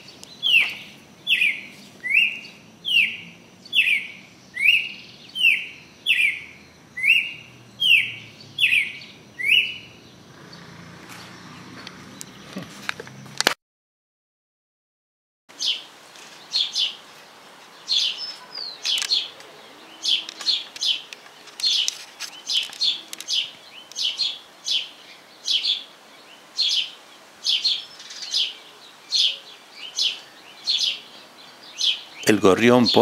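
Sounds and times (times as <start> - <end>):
fledgling begging chirps: 0.0 - 12.8, 17.8 - 33.0.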